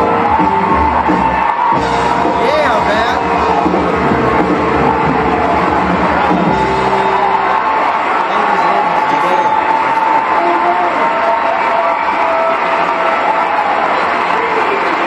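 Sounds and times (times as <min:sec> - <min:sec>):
band music: 0:00.0 - 0:11.6
crowd cheering and whooping: 0:00.0 - 0:15.0.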